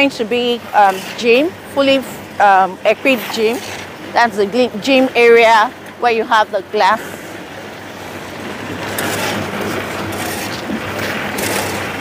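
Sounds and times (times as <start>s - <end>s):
machine running: 7.8s - 12.0s.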